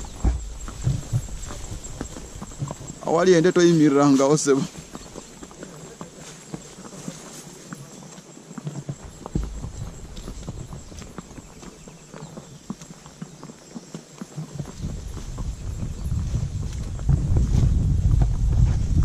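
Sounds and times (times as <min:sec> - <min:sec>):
wind rumble on microphone: 0:00.0 - 0:03.0, 0:14.6 - 0:19.0
horse hooves clip-clopping on dirt: 0:00.0 - 0:19.0.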